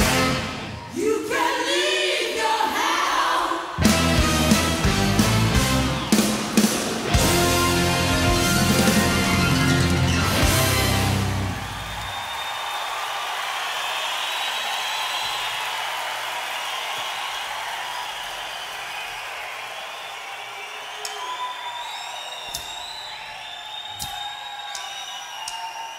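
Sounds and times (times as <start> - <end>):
audience applauding and cheering: 0.0 - 1.0, 3.8 - 25.9
whistles: 5.6 - 7.2, 11.6 - 25.9.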